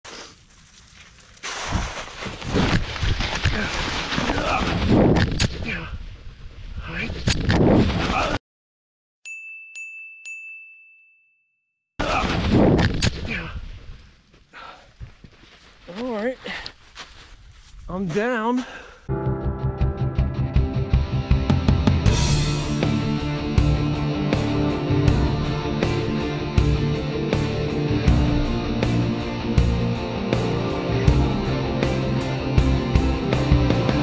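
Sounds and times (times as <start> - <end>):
footsteps crunching snow: 0.0 - 4.3, 13.8 - 19.0
brush and clothing rustling: 0.1 - 4.3, 15.0 - 18.6
ding tone: 9.2 - 11.8.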